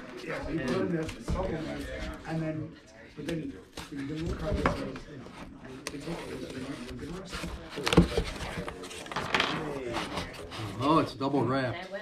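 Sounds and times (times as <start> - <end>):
quiet background talk: 0.0 - 12.0
cardboard being handled: 3.2 - 11.0.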